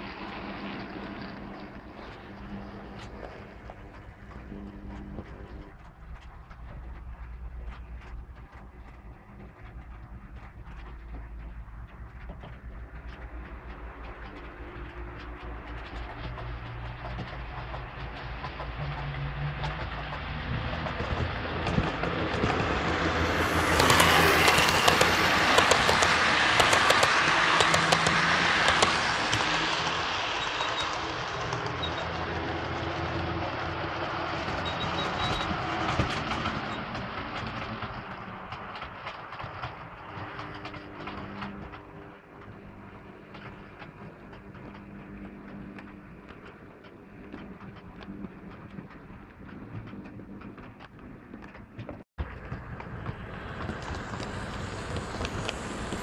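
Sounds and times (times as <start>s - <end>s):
motor hum: 0.0s - 56.0s
model train wheels clicking: 0.2s - 56.0s.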